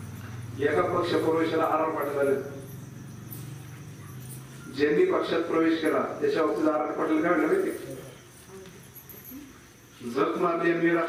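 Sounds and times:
crickets chirring: 0.0s - 11.0s
thin high steady tone: 0.0s - 11.0s.

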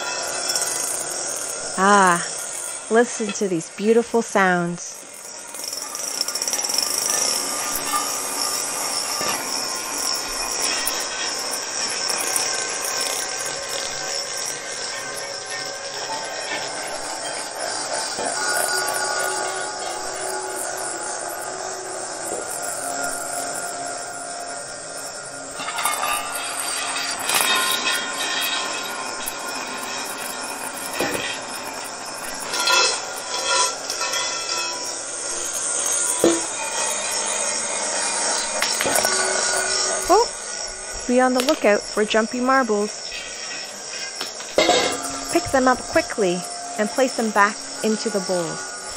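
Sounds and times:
marbles clinking against metal: 0.0s - 48.9s
marbles rolling in metal bowls: 0.0s - 48.9s
metal bowls ringing: 0.0s - 48.9s.

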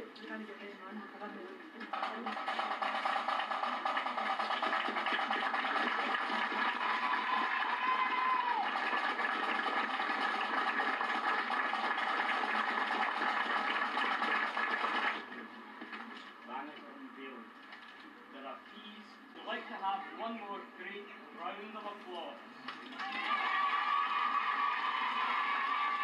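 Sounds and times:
crowd applauding and cheering: 1.9s - 15.4s, 22.7s - 26.0s.

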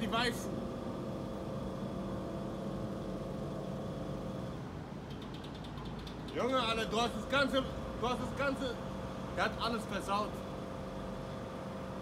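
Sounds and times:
faint constant tones: 0.0s - 12.0s
steady mechanical hum: 0.0s - 12.0s.

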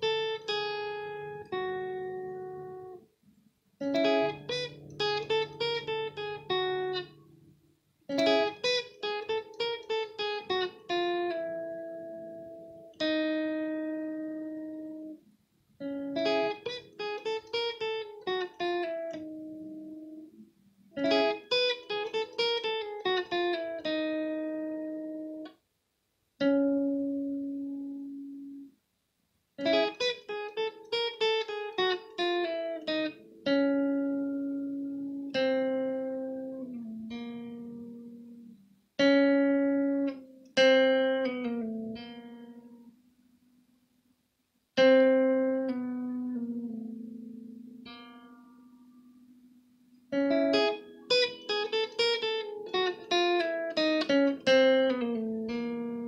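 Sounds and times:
electric guitar chords ringing: 0.0s - 3.1s, 3.8s - 25.6s, 26.4s - 28.8s, 29.6s - 43.8s, 44.8s - 56.0s.

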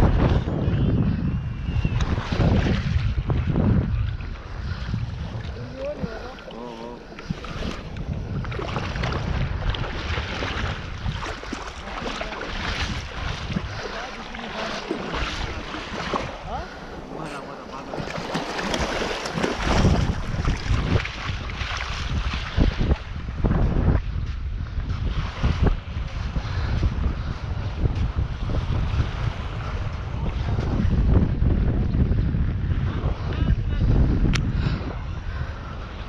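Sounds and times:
wind buffeting microphone: 0.0s - 36.0s
small waves washing: 2.0s - 31.1s.

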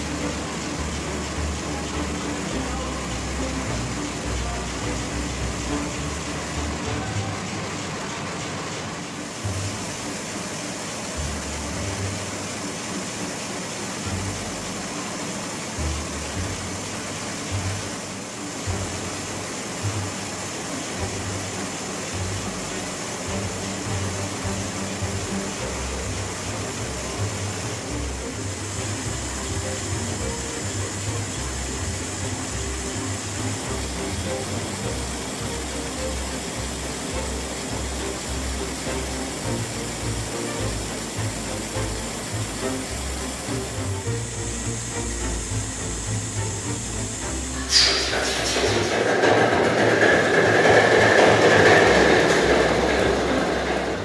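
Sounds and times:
diesel engine clattering: 0.0s - 54.0s.

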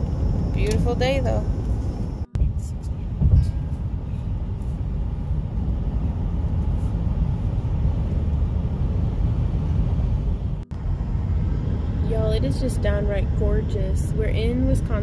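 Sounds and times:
road and engine rumble in car: 0.0s - 15.0s.

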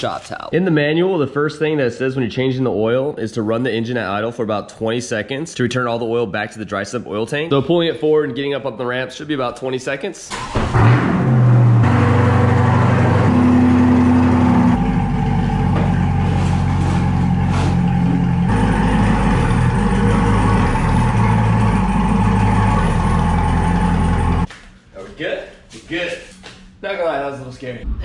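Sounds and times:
car engine idling: 11.5s - 24.5s.

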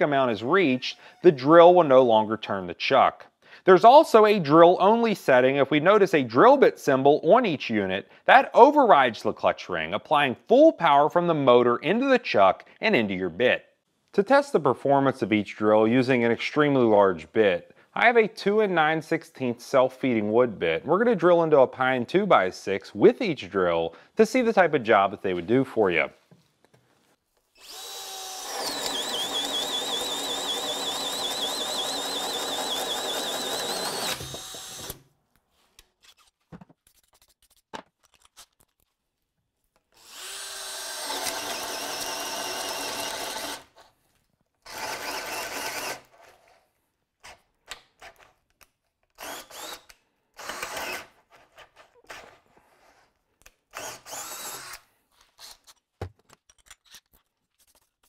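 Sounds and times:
cordless drill motor whining: 27.6s - 35.0s, 40.0s - 43.7s, 49.2s - 51.0s, 53.7s - 54.8s
drill bit cutting wood: 27.6s - 35.0s, 40.0s - 43.7s, 44.7s - 46.1s, 49.2s - 51.1s, 53.7s - 54.8s.

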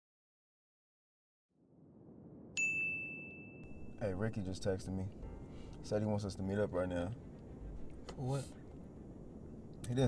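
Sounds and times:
low steady rumble: 1.7s - 10.0s
phone notification ding: 2.6s - 4.0s.

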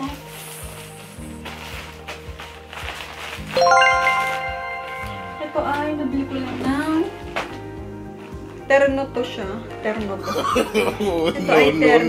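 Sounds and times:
background music with steady beat: 0.0s - 12.0s
bright rising chime: 3.6s - 6.8s.

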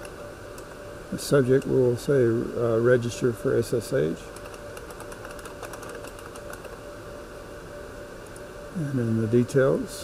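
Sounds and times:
faint steady hum: 0.0s - 10.0s
computer keyboard typing: 4.3s - 6.8s.

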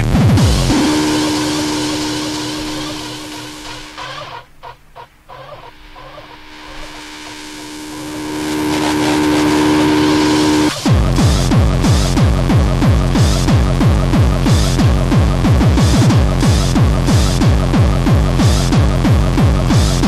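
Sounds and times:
kick drum: 0.0s - 0.8s, 10.9s - 20.0s
repeating bass pulse: 0.0s - 20.0s
sustained synth drone: 0.0s - 20.0s.

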